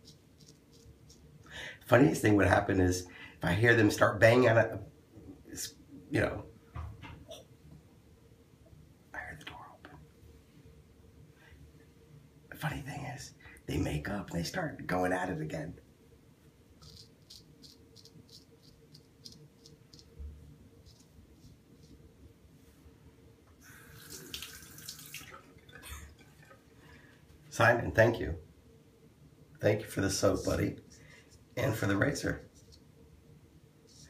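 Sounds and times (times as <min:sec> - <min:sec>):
sink tap running: 0:23.9 - 0:25.4
water splashing into basin: 0:23.9 - 0:26.6.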